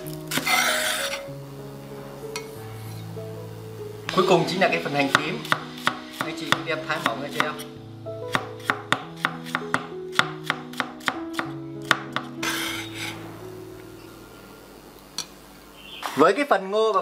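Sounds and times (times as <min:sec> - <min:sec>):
soft background music: 0:00.0 - 0:16.7.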